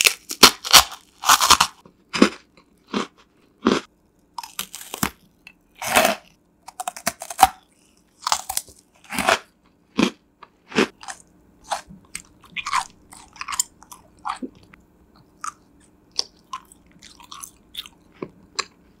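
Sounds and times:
crunching and chewing crisp food: 0.0s - 19.0s.

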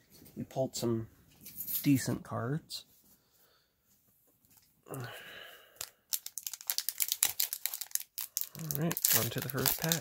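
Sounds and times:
foil wrapper tearing: 5.8s - 10.0s.

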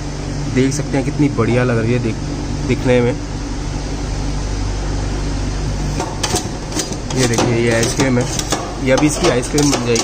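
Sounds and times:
refrigeration machinery hum: 0.0s - 10.0s
metal spatula scraping steel plate: 5.9s - 10.0s.

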